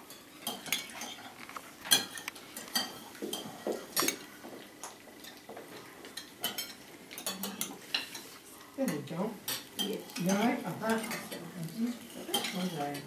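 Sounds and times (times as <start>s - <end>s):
cutlery clinking on plates: 0.0s - 13.0s.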